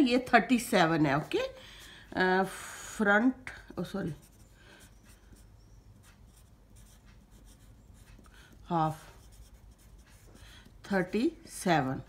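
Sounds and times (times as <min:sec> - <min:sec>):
pencil scratching on paper: 0:04.0 - 0:11.4.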